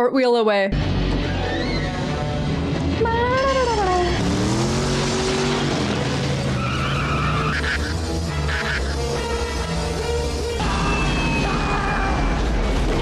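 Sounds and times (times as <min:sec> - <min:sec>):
orchestral music: 0:00.8 - 0:13.0
vehicle engine running: 0:02.0 - 0:10.6.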